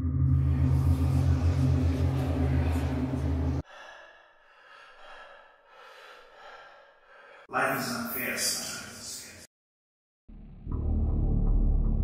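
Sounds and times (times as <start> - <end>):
loud deep rumble: 0.0 - 3.6
man breathing heavily and gasping: 3.6 - 7.5.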